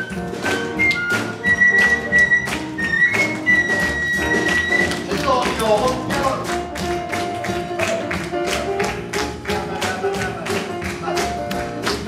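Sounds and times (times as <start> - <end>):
band playing: 0.0 - 12.0
rhythmic handclapping: 0.0 - 12.0.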